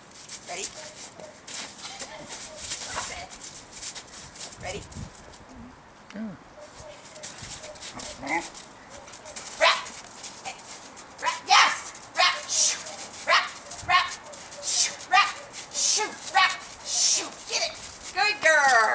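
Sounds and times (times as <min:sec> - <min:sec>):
dog barking: 0:00.7 - 0:01.4, 0:06.6 - 0:09.9, 0:11.2 - 0:17.4.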